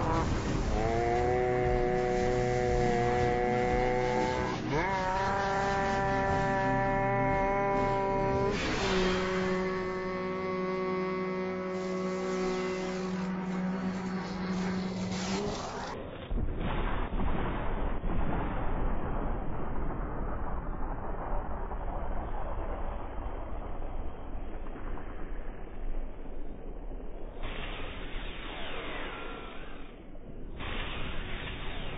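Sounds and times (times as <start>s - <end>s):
slowed sung note drone: 0.0s - 16.0s
loud unslowed sound: 0.0s - 31.9s.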